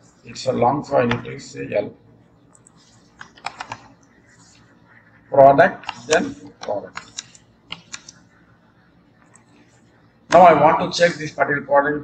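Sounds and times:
computer keyboard keystrokes: 2.5 - 3.9, 5.8 - 8.2.

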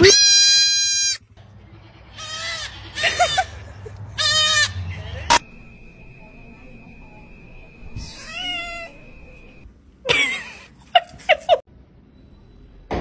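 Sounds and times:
goat bleating: 0.0 - 3.6, 4.2 - 4.8.

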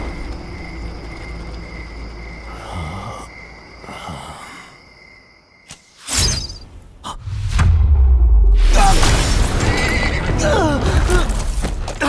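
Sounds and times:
crickets chirping: 0.0 - 7.2
low rumble: 7.2 - 8.8.

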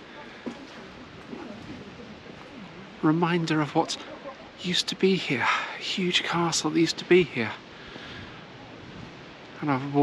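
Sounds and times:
wind hiss on microphone: 0.0 - 10.0.

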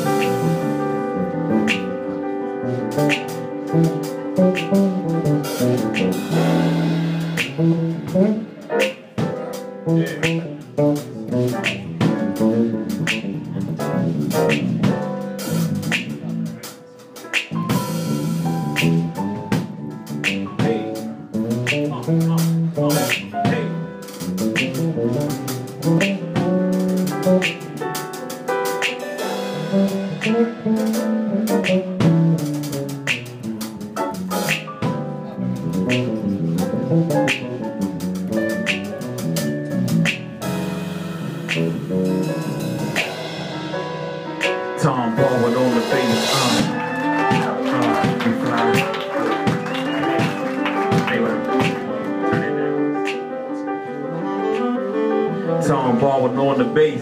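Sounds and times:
drum kit and cymbal strikes: 0.0 - 53.2
jazz combo playing: 0.0 - 57.0
piano chords: 0.0 - 57.0
plucked bass notes: 0.0 - 57.0.

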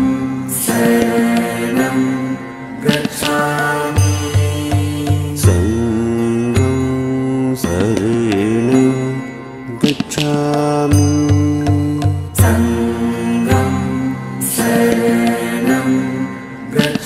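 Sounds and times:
person chanting to music: 0.0 - 17.0.

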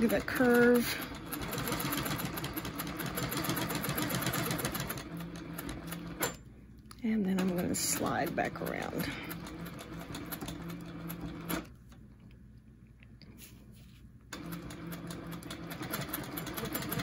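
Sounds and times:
quilting machine stitching: 0.0 - 6.4, 7.3 - 11.7, 14.3 - 17.0.

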